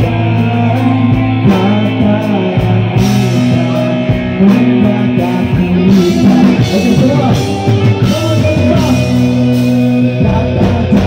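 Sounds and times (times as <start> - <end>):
bass line: 0.0 - 11.0
drum beats: 0.0 - 11.0
electric guitars: 0.0 - 11.0
man singing into a microphone: 0.0 - 11.0.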